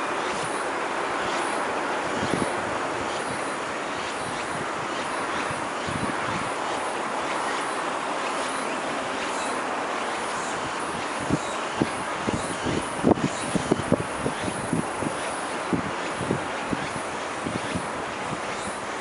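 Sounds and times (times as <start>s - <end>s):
tram running on track: 0.0s - 19.0s.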